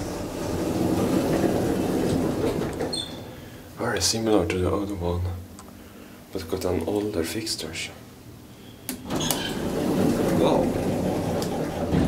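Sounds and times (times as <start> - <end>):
elevator doors sliding open: 0.0 - 3.5, 9.0 - 12.0.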